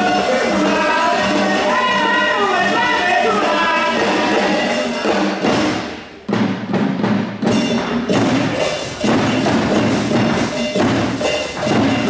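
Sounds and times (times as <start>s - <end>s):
hand drums in steady rhythm: 0.0s - 12.0s.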